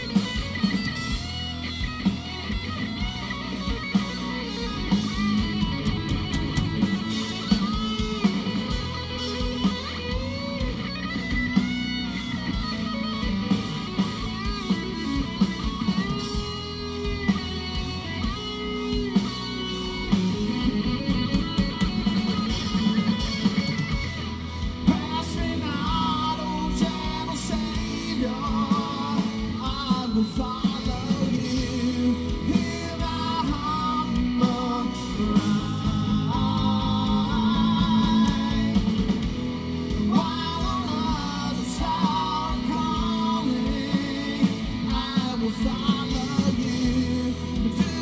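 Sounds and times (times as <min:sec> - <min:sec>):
live rock band playing: 0:00.0 - 0:48.0
person singing: 0:24.8 - 0:39.2, 0:40.0 - 0:48.0.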